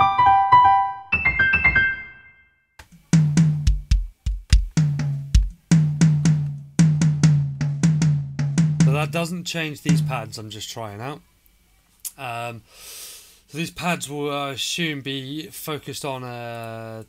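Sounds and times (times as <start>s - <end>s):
piano notes: 0.0s - 2.5s
drum hits: 2.8s - 10.4s.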